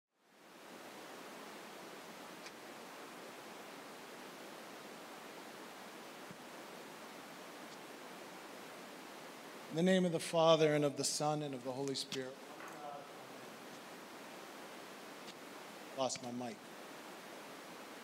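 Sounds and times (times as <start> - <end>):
low recording hiss: 0.1 - 18.0.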